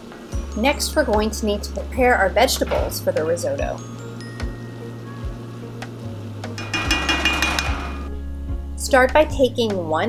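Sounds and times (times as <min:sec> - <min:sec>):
instrumental music with bass and drums: 0:03.8 - 0:08.8.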